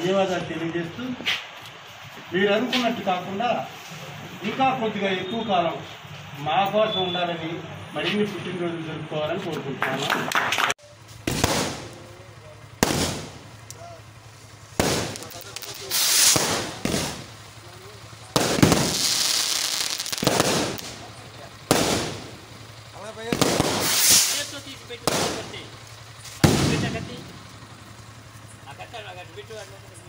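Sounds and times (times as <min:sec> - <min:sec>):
firework bangs: 0:10.3 - 0:27.8
firework crackling: 0:10.8 - 0:30.0
firework rising hisses: 0:12.8 - 0:17.6, 0:18.2 - 0:22.5, 0:23.3 - 0:27.2.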